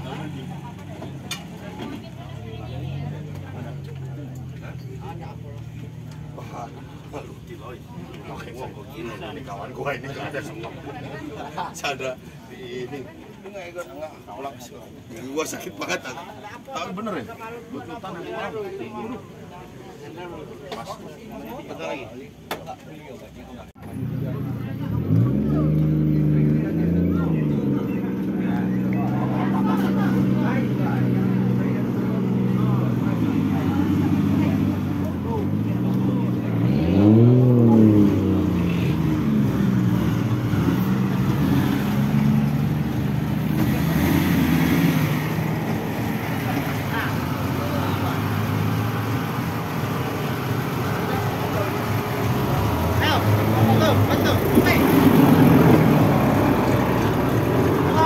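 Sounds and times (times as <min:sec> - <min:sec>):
buggy engine idling and revving: 0:00.0 - 0:13.3, 0:23.7 - 0:58.0.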